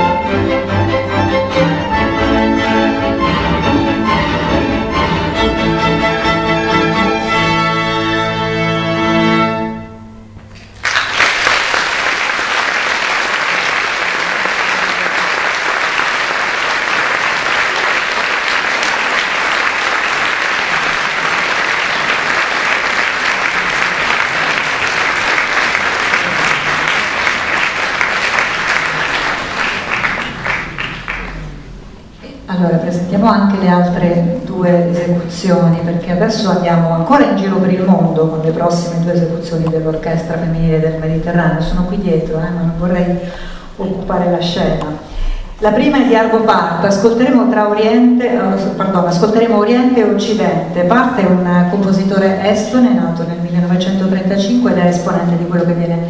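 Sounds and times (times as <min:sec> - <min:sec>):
string orchestra playing: 0:00.0 - 0:10.2
audience applauding: 0:10.6 - 0:31.9.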